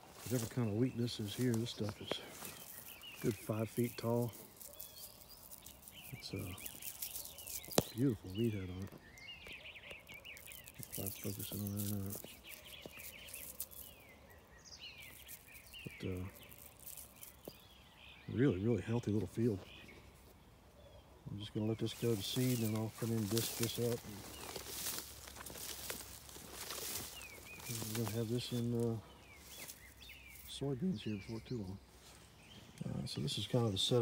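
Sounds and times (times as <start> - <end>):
stalks rustling underfoot: 0.0 - 18.0, 21.4 - 34.0
birds chirping: 0.0 - 34.0
man speaking: 0.2 - 2.3, 3.2 - 4.4, 6.1 - 6.6, 7.9 - 8.9, 16.0 - 16.4, 18.3 - 19.6, 21.3 - 24.2, 27.7 - 29.0, 32.8 - 34.0.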